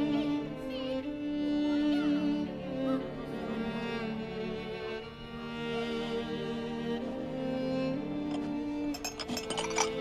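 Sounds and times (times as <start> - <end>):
bowed-string score: 0.0 - 10.0
porcelain teacup smashing: 8.3 - 10.0.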